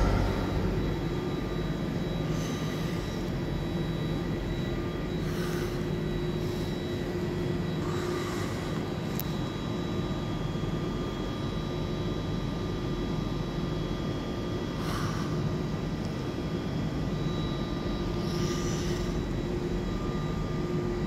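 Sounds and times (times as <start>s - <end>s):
train humming and droning: 0.0s - 6.0s.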